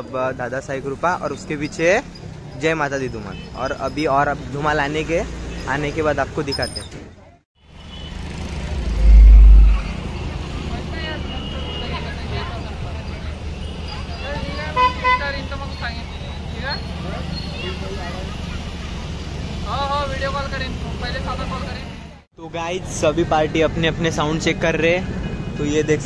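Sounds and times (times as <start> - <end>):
steady low rumble: 8.6 - 10.1
deep bass burst: 8.6 - 10.2.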